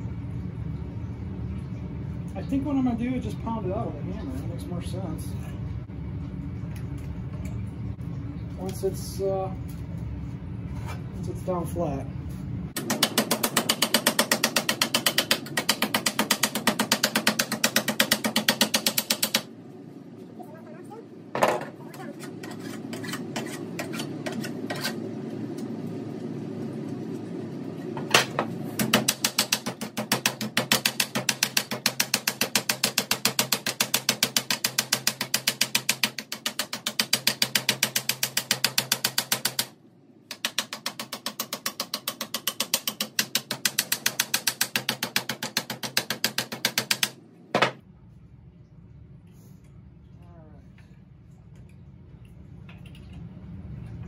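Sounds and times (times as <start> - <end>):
hammer tapping sheet steel: 12.8 - 19.5, 28.2 - 47.8.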